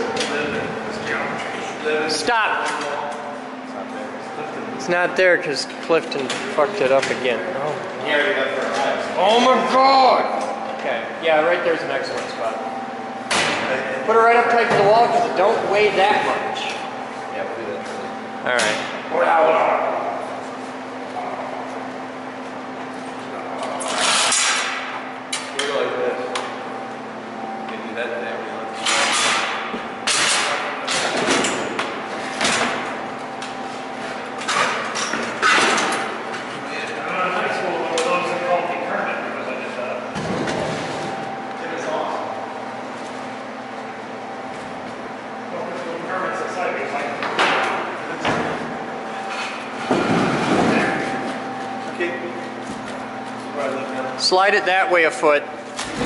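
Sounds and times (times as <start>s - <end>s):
steady hum: 0.0s - 56.0s.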